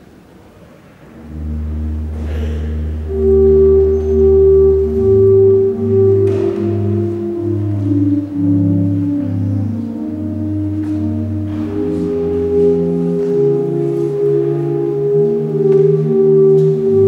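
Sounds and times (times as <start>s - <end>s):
church organ playing chords: 1.1s - 17.0s.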